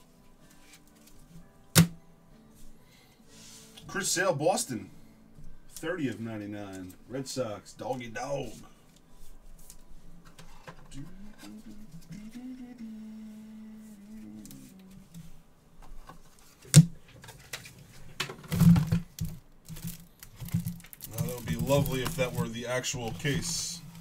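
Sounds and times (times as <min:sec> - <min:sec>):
man humming: 0:10.9 - 0:15.2.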